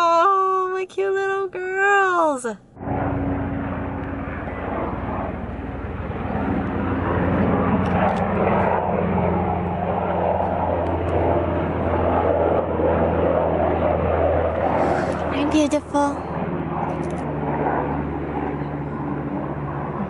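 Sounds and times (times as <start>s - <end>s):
propeller aircraft engine droning: 0.0s - 20.0s.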